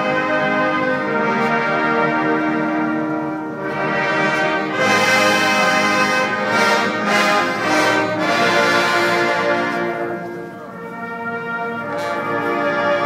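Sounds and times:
military brass band playing: 0.0s - 13.0s
trombones and trumpets: 0.0s - 13.0s.

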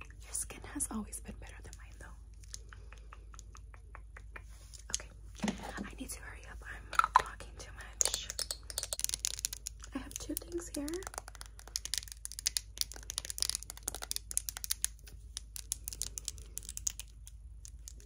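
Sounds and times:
nails tapping on packaging: 6.9s - 18.0s.

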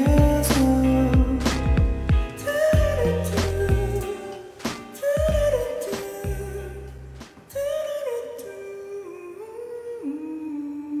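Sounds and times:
man humming: 0.0s - 7.0s.

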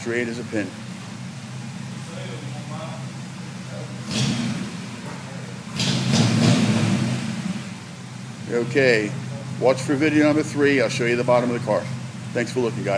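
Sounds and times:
car engine running at low speed: 0.0s - 12.9s
engine throttle surges: 0.0s - 12.9s.

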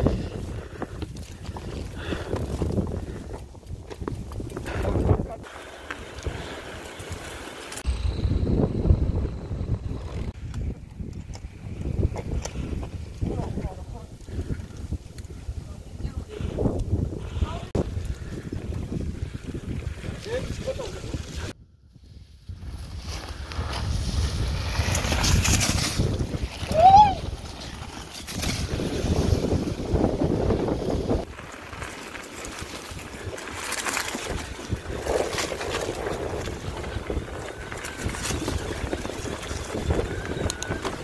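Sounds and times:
bike tyres crunching leaves: 0.0s - 8.2s, 22.4s - 41.0s
wind buffeting microphone: 0.0s - 41.0s.

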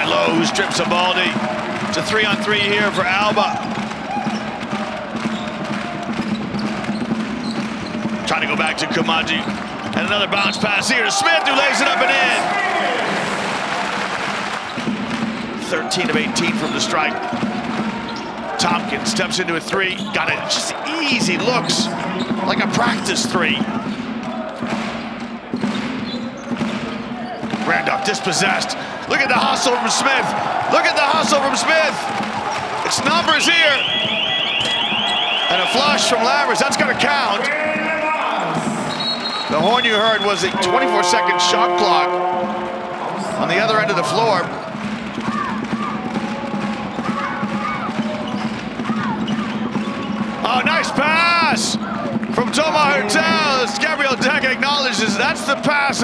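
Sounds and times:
sneaker squeaks: 6.2s - 8.1s, 18.1s - 18.4s, 19.9s - 20.5s, 25.5s - 27.4s, 33.6s - 35.6s, 38.9s - 40.3s, 46.9s - 50.3s
arena background noise: 27.2s - 56.0s.

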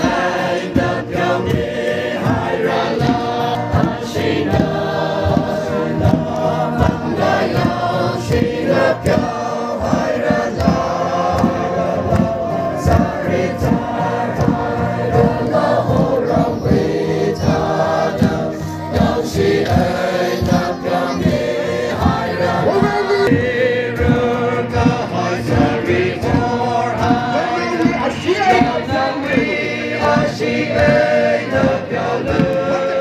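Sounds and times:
crowd singing a hymn: 0.0s - 33.0s
steady beat: 0.0s - 33.0s.

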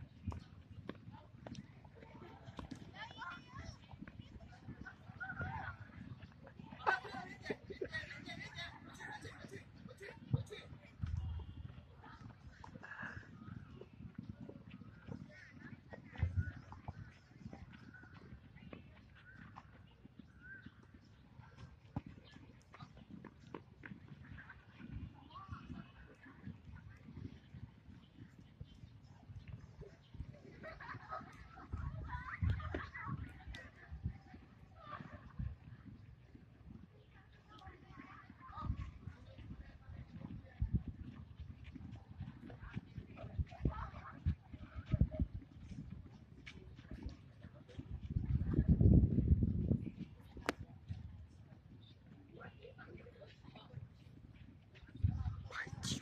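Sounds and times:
faint voices: 0.0s - 56.0s.

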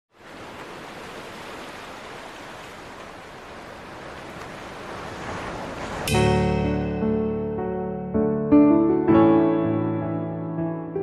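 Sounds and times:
waves breaking on shore: 0.1s - 7.2s.

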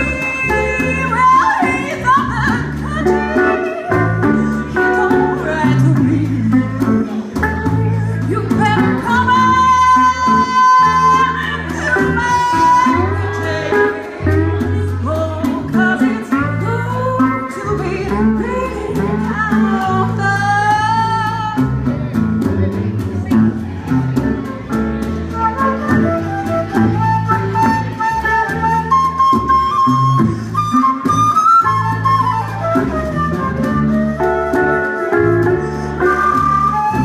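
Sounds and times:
low bass line: 0.0s - 37.0s
strummed guitars: 0.0s - 37.0s
flute playing held notes: 25.3s - 37.0s.

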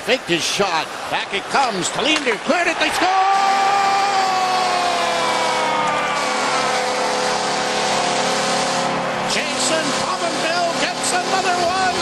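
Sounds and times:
crowd noise: 0.0s - 12.0s
goal horn: 4.4s - 12.0s.

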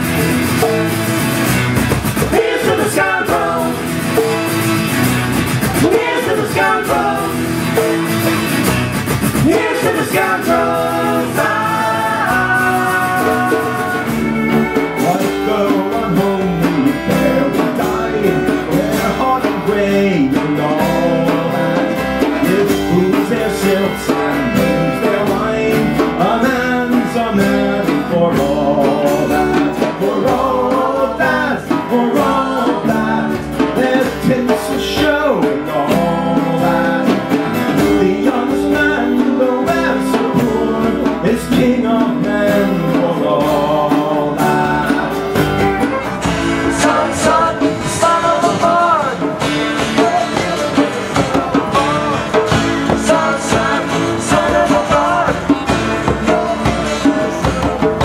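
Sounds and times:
group singing: 0.0s - 58.0s
strummed acoustic guitars: 0.0s - 58.0s.

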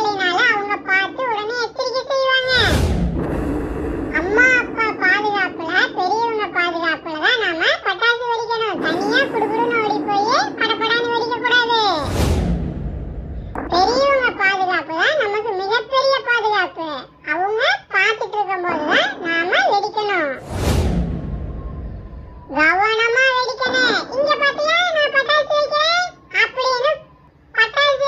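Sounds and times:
child speaking: 0.0s - 2.8s, 4.1s - 12.1s, 13.6s - 20.4s, 22.5s - 28.0s
firecracker rumbling hiss: 2.5s - 6.4s.

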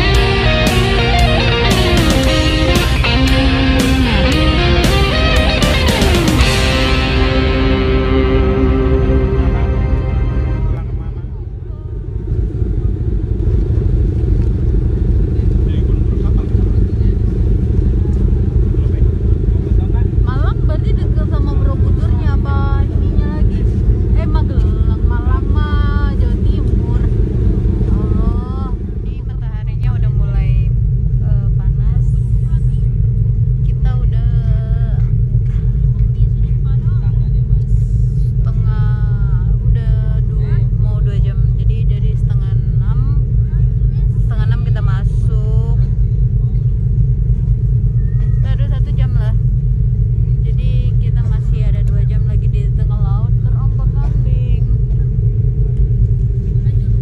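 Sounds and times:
ferry low rumble: 0.0s - 57.0s
passengers chatting: 0.0s - 57.0s.

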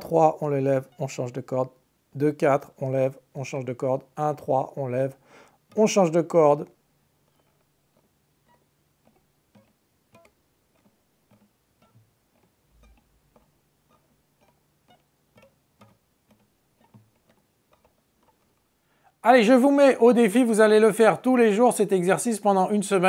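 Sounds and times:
fingers tapping guitar strings: 3.8s - 19.1s.

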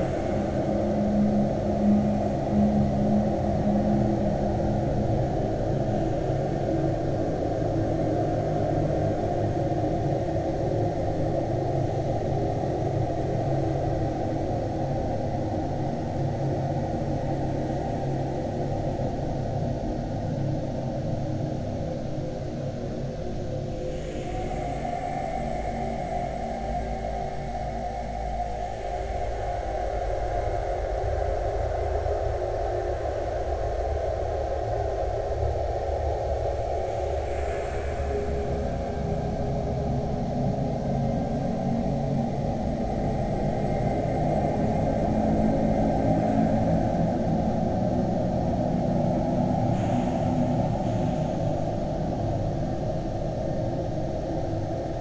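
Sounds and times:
slowed ambient music with heavy reverb: 0.0s - 8.0s.

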